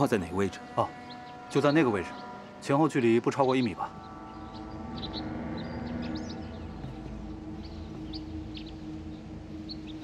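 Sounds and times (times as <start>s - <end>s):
small birds chirping: 0.0s - 10.0s
sustained film music chords: 0.0s - 10.0s.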